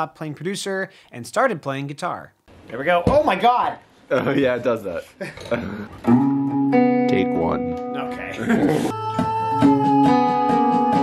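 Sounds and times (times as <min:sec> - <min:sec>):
electric guitar chord ringing: 0:06.0 - 0:08.4.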